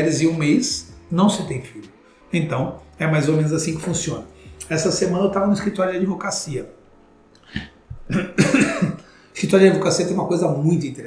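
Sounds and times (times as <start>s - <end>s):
man coughing: 7.5s - 9.1s.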